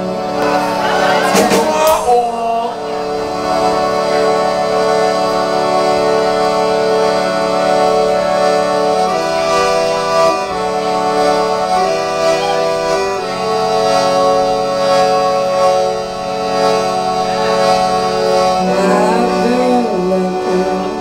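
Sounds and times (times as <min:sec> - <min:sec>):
harmonium chords: 0:00.0 - 0:21.0.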